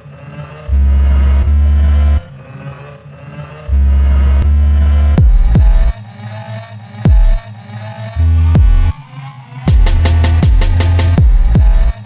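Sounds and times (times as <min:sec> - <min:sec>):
electronic music with deep bass: 0:00.0 - 0:12.0
sharp bass hits dropping in pitch: 0:03.7 - 0:06.0, 0:07.1 - 0:07.4, 0:08.2 - 0:09.0, 0:09.7 - 0:12.0.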